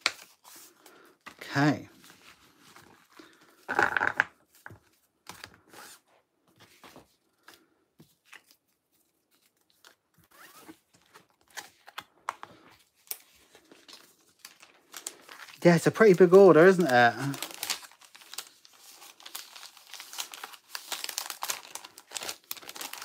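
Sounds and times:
paper cards rustling and tapping: 0:00.0 - 0:01.4, 0:06.5 - 0:23.0.

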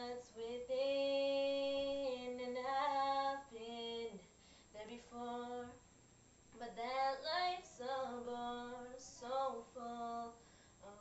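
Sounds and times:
girl singing unaccompanied: 0:00.0 - 0:05.9, 0:06.5 - 0:11.0
short breaths: 0:04.3 - 0:04.8, 0:10.4 - 0:10.8.

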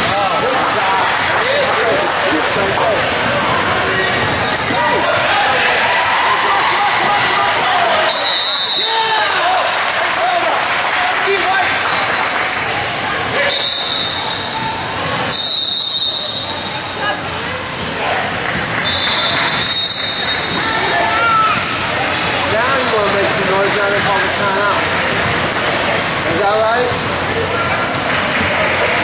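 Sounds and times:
voices echoing in a hall: 0:00.0 - 0:29.0
sneakers squeaking on floor: 0:03.9 - 0:05.2, 0:13.6 - 0:18.2, 0:18.8 - 0:23.1.

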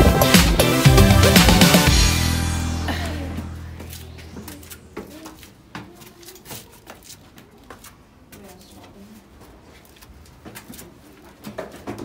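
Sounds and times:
footsteps on stone floor: 0:03.3 - 0:12.0.

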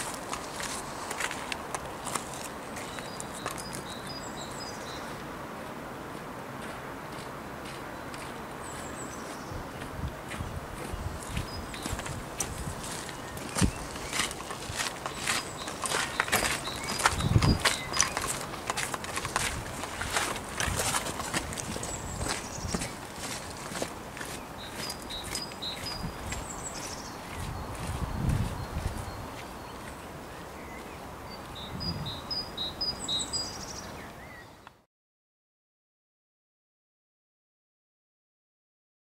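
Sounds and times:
footsteps on gravel: 0:00.0 - 0:04.4, 0:06.1 - 0:30.2.

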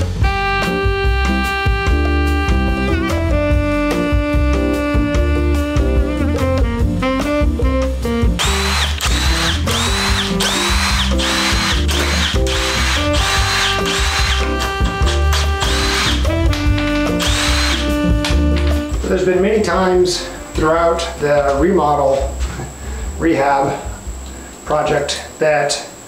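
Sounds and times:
background music: 0:00.0 - 0:24.3
cordless drill whine bursts: 0:08.4 - 0:16.3, 0:17.2 - 0:18.0.

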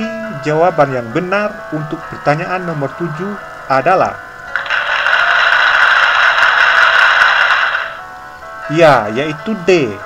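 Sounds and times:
faint background music: 0:00.0 - 0:10.0
loud dense suspense noise: 0:04.5 - 0:08.0.

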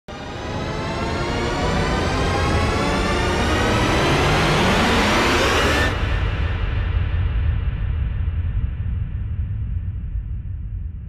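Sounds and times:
low rumble: 0:05.9 - 0:11.0.

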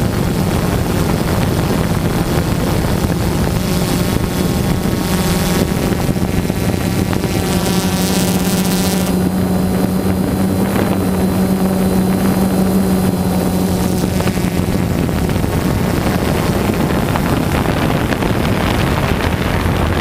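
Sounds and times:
drone motors humming: 0:00.0 - 0:20.0
wind on microphone: 0:00.0 - 0:20.0.

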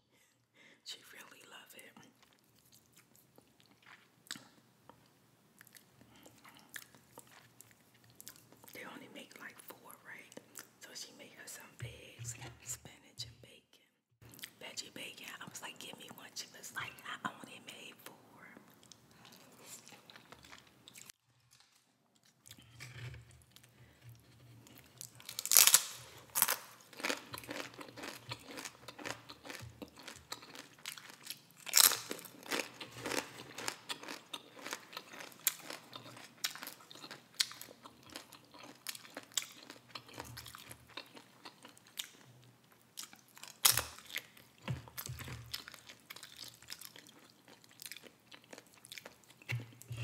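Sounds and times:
chips being bitten and chewed: 0:24.7 - 0:42.3, 0:42.9 - 0:49.9.

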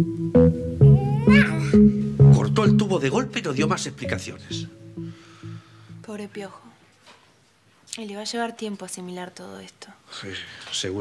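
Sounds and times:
background music with low notes: 0:00.0 - 0:06.4
high rising vocal sound: 0:00.8 - 0:02.0.

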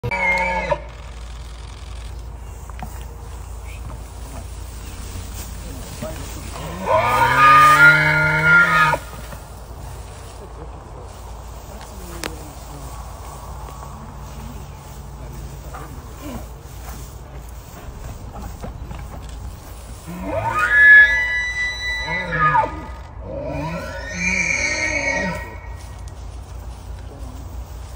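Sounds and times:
low background rumble: 0:00.0 - 0:23.6
elk bugling: 0:03.2 - 0:09.5, 0:15.6 - 0:26.0
deep growl: 0:04.8 - 0:09.2.

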